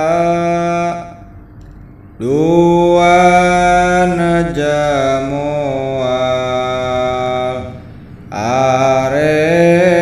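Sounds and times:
man chanting unaccompanied: 0:00.0 - 0:01.3, 0:02.2 - 0:10.0.

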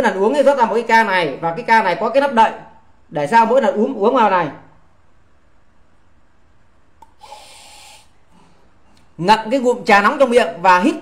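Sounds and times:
man sniffing through nose: 0:07.1 - 0:08.7.

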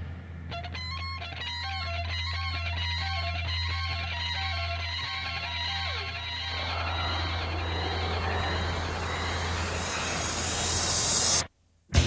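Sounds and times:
steady low drone: 0:03.8 - 0:11.5
rush of noise: 0:06.1 - 0:11.5.

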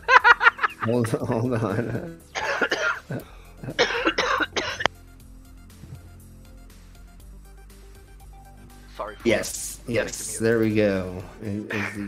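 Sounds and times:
quiet background music: 0:00.0 - 0:12.0
person coughing hard: 0:02.4 - 0:04.9.

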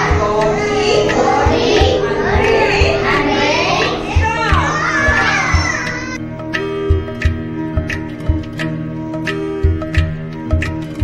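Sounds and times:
children calling out and singing: 0:00.0 - 0:06.2
music with drone and beat: 0:00.0 - 0:11.0.

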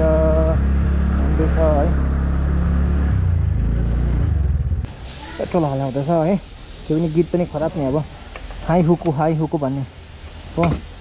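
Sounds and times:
man talking: 0:00.0 - 0:00.6, 0:01.2 - 0:02.0, 0:05.4 - 0:09.9, 0:10.6 - 0:10.8
faint steady hiss: 0:04.9 - 0:11.0.

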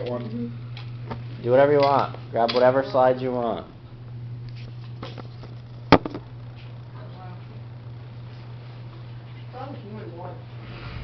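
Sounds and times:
steady low hum: 0:00.0 - 0:11.0
camera knocking on wooden desk: 0:05.9 - 0:06.3.

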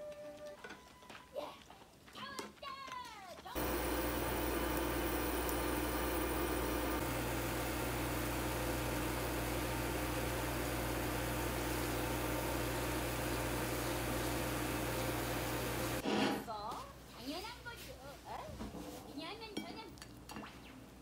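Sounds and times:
low electric hum: 0:03.6 - 0:16.0
pancake sizzling in a pan: 0:03.6 - 0:16.0.

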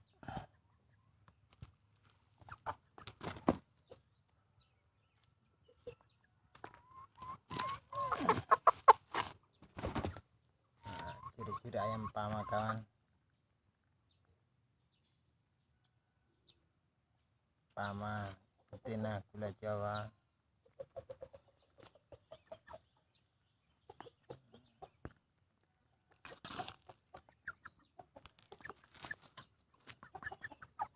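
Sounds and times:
chickens clucking: 0:00.0 - 0:30.9.

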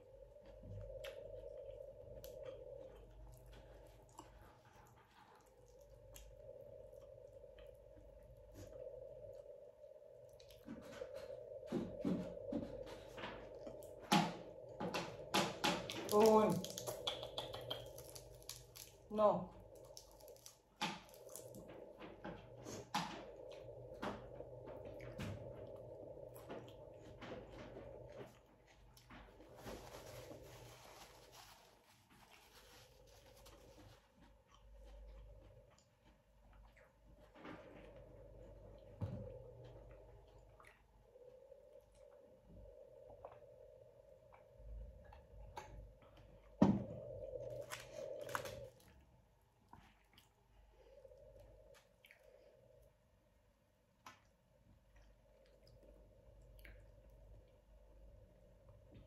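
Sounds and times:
faint steady hum: 0:00.0 - 0:59.0
soft chewing: 0:00.0 - 0:59.0
aluminium foil crinkle: 0:15.9 - 0:21.7
lip smacks: 0:16.6 - 0:19.0.

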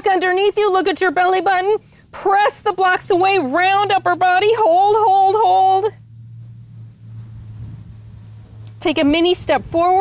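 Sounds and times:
faint background noise: 0:00.0 - 0:10.0
low steady hum: 0:00.0 - 0:10.0.

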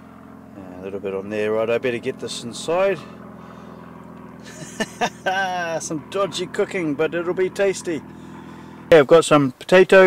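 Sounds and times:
low engine-like hum: 0:00.0 - 0:10.0.

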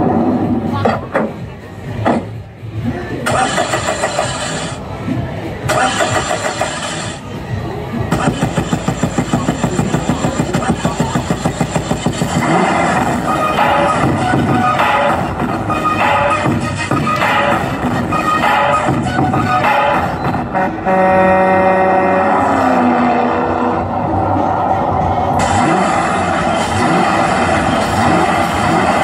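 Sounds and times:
loud dance music through speakers: 0:08.1 - 0:20.5, 0:25.4 - 0:29.0.

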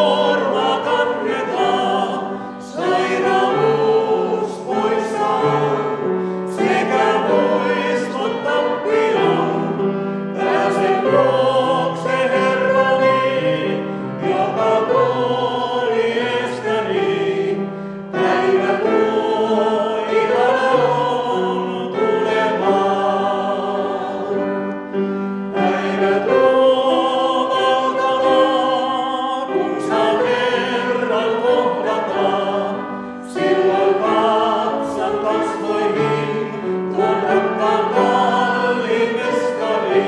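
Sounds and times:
vocal quartet singing in harmony: 0:00.0 - 0:40.0.

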